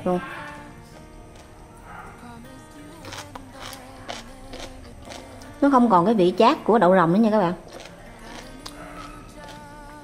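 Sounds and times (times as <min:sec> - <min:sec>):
soft background music: 0:00.0 - 0:10.0
crisp chewing crunches: 0:03.0 - 0:05.5, 0:07.7 - 0:09.8.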